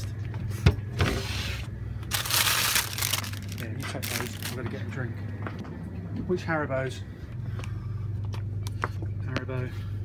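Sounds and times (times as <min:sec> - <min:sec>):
freezer humming: 0:00.0 - 0:10.0
wrappers rustling and crinkling: 0:02.1 - 0:04.8.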